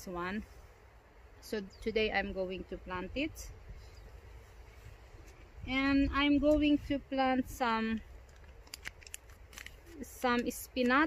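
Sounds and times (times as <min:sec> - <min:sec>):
low steady rumble: 0:00.0 - 0:11.0
small clicks of seed packets: 0:08.1 - 0:11.0
paper crinkling: 0:08.2 - 0:10.6.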